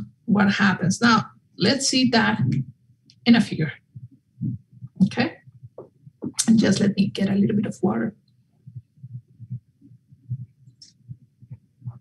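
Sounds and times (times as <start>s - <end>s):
faint low thuds drinking: 8.4s - 12.0s.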